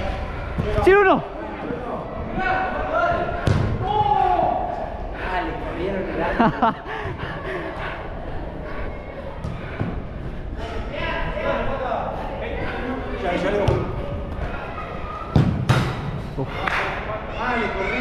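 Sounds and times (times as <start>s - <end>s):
players calling out in echoing hall: 0.0s - 18.0s
football thuds: 3.4s - 3.8s, 15.3s - 16.0s.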